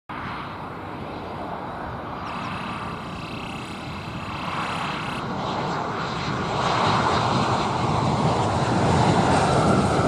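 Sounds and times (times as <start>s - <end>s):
jet engines rumbling: 0.1s - 10.0s.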